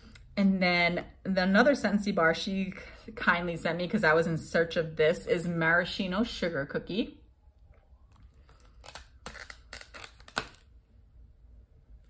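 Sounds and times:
plastic packaging crinkling: 8.1s - 10.8s.

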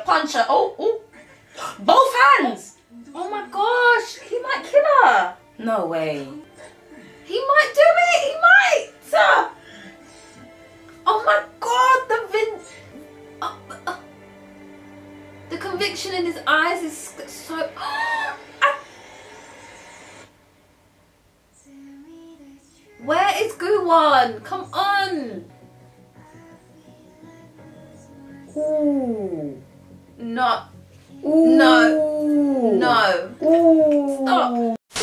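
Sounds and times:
faint steady hiss: 14.2s - 28.5s
woman's strangled cry: 17.8s - 18.9s.

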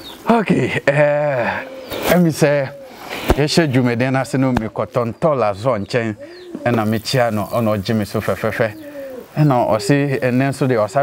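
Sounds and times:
man speaking: 0.3s - 11.0s
bird cooing: 1.0s - 3.6s, 5.9s - 11.0s.

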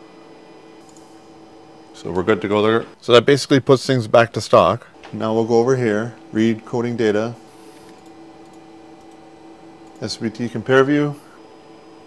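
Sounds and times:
room hum with held tone: 0.0s - 12.0s
computer mouse clicks: 7.8s - 9.2s.

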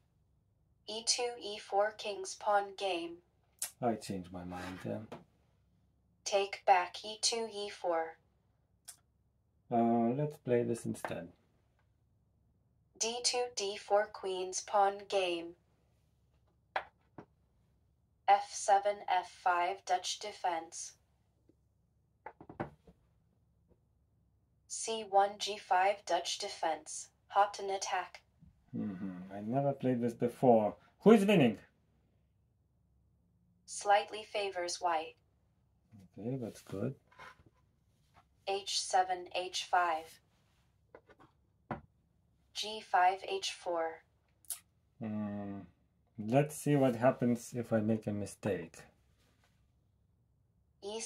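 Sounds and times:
chess piece knocking on wooden board: 22.3s - 22.9s.

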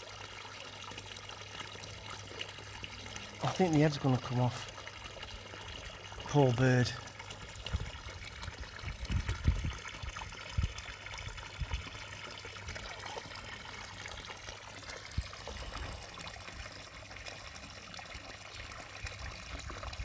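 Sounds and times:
water trickling into pond: 0.0s - 20.0s.

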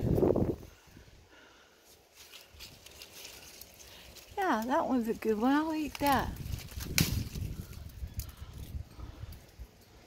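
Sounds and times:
rustling leaves: 0.0s - 10.0s.

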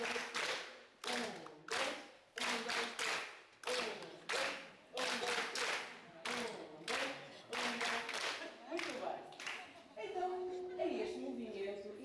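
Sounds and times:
people clapping in rhythm: 0.0s - 9.8s
voices: 0.0s - 12.0s.

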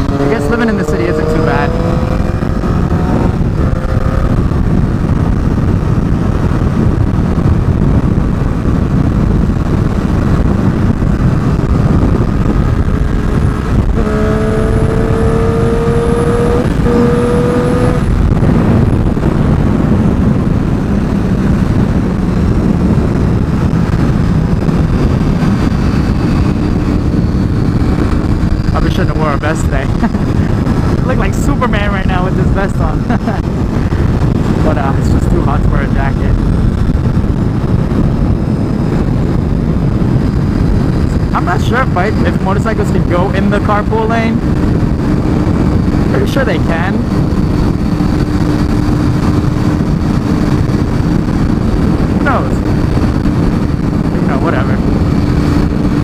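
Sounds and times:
motorcycle engine cruising: 0.0s - 56.0s
wind on microphone: 0.0s - 56.0s.

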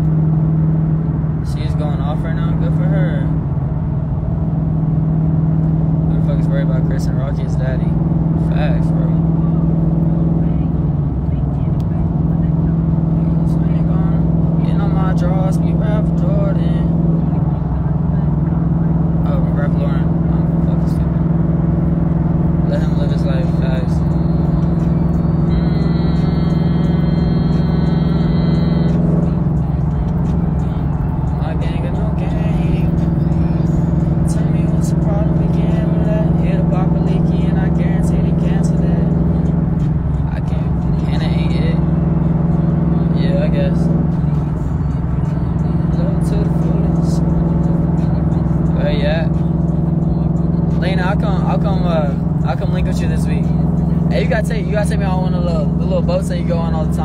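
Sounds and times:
car interior drone: 0.0s - 57.0s
brief high tone: 25.5s - 29.1s.

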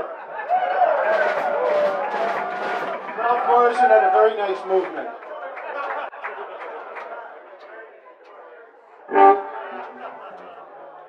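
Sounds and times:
crowd chatter: 0.0s - 11.0s
loud honking note: 9.1s - 10.4s.

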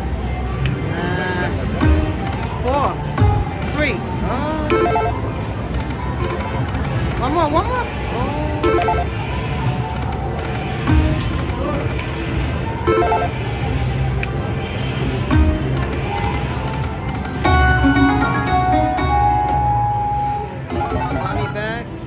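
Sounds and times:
people talking: 0.9s - 1.9s, 7.2s - 9.0s, 21.0s - 21.9s
slot machine reels spinning: 20.7s - 21.7s.

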